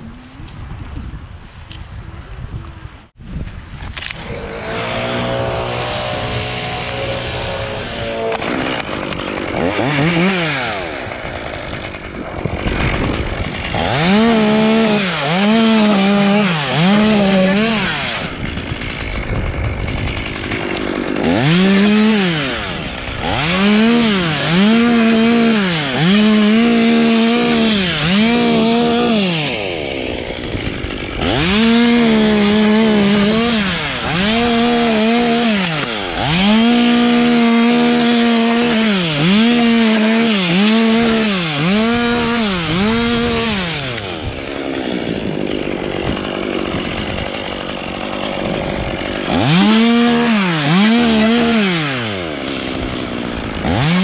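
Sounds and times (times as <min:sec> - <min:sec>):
chainsaw cutting and revving: 0:03.8 - 0:54.0.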